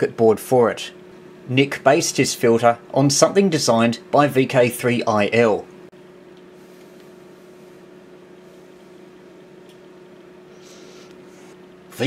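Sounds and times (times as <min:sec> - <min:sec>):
background hum: 0:00.0 - 0:12.0.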